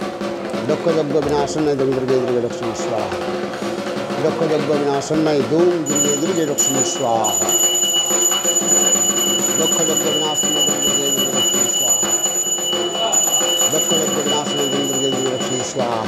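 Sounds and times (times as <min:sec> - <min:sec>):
handbell ringing: 0:05.8 - 0:16.0.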